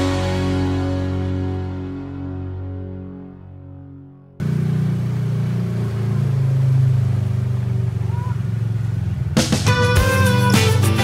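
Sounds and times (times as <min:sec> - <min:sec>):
music: 0:00.0 - 0:04.4, 0:09.4 - 0:11.0
utility vehicle engine droning: 0:00.0 - 0:11.0.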